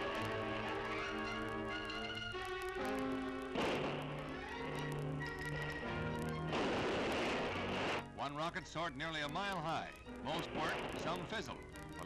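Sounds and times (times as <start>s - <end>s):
newsreel background music: 0.0s - 12.0s
model rocket launch blast: 3.5s - 4.5s, 6.5s - 8.0s.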